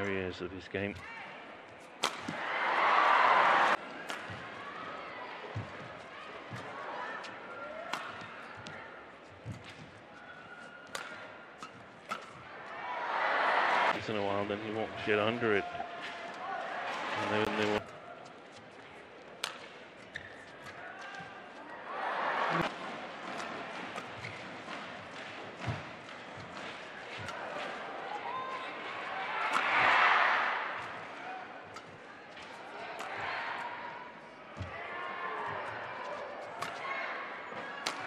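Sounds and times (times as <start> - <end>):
rackets striking shuttlecock: 1.9 - 2.4, 3.7 - 4.6, 7.8 - 8.8, 10.8 - 12.5, 19.4 - 21.3, 22.6 - 27.8, 29.4 - 33.7, 36.6 - 36.8, 37.6 - 38.0
crowd cheering: 2.0 - 8.5, 12.4 - 14.7, 15.5 - 17.8, 20.8 - 24.2, 26.9 - 31.8, 32.4 - 38.0.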